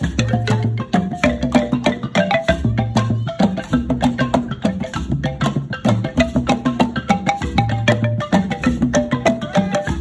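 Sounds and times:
wooden xylophone melody: 0.0 - 10.0.

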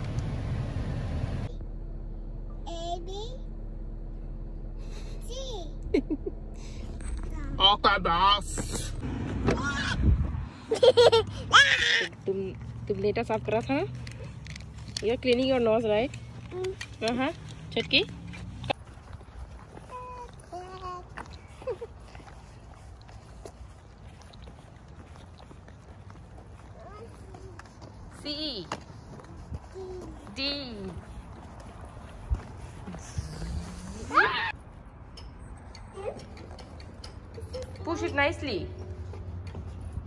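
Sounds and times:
child's voice: 2.6 - 3.4, 5.2 - 5.8, 7.2 - 7.6, 16.4 - 16.9, 19.7 - 21.8, 26.6 - 27.9, 29.3 - 30.4, 35.9 - 36.4
footsteps on asphalt: 11.8 - 35.0, 36.0 - 40.0.

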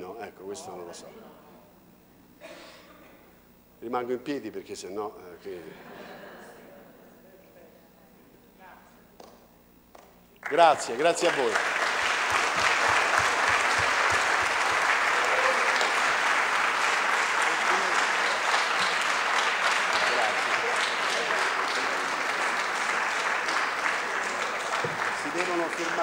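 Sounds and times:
audience applauding: 10.4 - 26.0.

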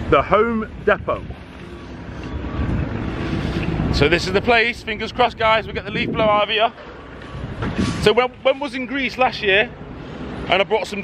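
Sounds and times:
vehicle rumble approaching: 1.2 - 8.4.

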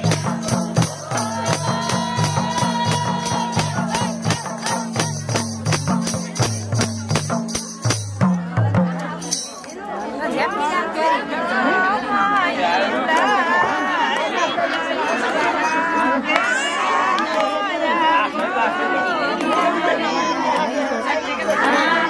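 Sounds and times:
women chattering: 0.0 - 22.0.

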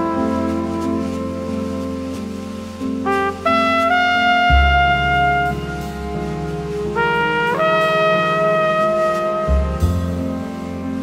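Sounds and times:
jazz horn melody: 0.0 - 11.0
bass line: 3.1 - 11.0.

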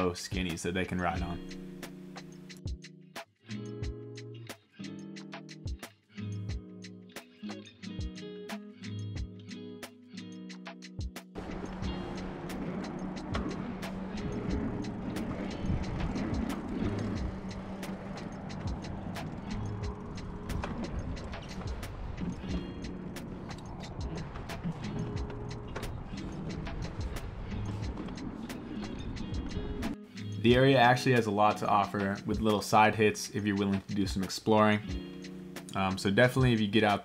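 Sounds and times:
background music: 0.0 - 37.0
bike tyre and wind rush: 11.4 - 30.0.

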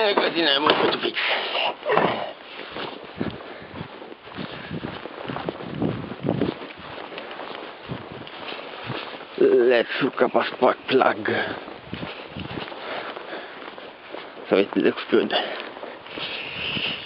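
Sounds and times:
footsteps on grass: 0.0 - 17.0.

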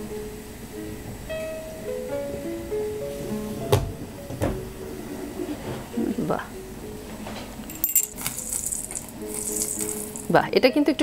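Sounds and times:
faint background music: 0.0 - 11.0
light metallic clinks: 7.7 - 10.4.

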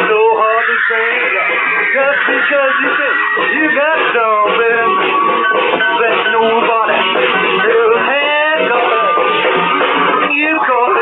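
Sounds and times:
man singing wordless vocal: 0.0 - 5.1, 5.8 - 9.3, 10.3 - 11.0
rock band playing: 0.0 - 11.0.

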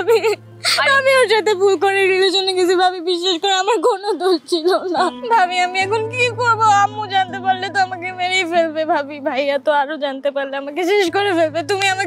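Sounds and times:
woman crying and whimpering: 0.0 - 1.7.

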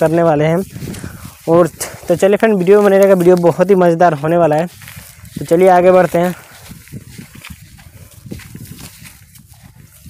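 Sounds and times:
footsteps through dry grass: 0.0 - 10.0.

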